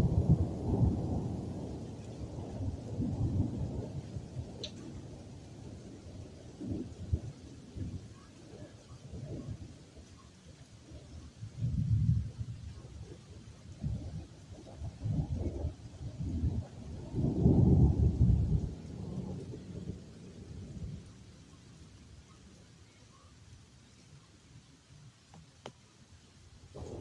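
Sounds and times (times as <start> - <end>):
rolling thunder: 0.0 - 9.8, 11.0 - 21.2, 26.8 - 27.0
faint rain: 0.0 - 27.0.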